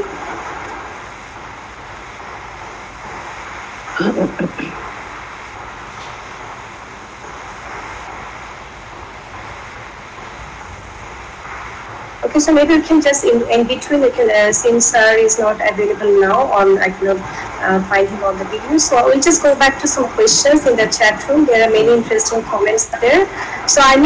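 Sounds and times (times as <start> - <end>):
microphone background noise: 0.0 - 24.0.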